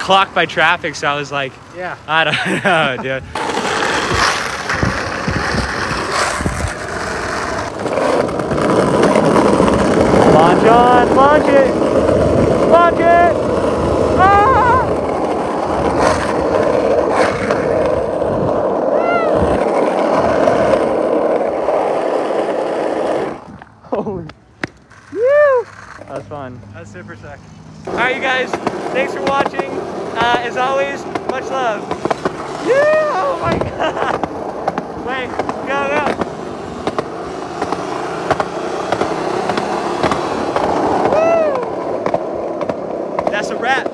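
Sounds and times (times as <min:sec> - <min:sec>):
skateboard wheels rolling on asphalt: 0:00.0 - 0:43.9
skateboard clacks: 0:03.3 - 0:23.5, 0:24.2 - 0:26.2, 0:27.8 - 0:43.9
person calling out: 0:14.1 - 0:15.0, 0:32.6 - 0:33.6.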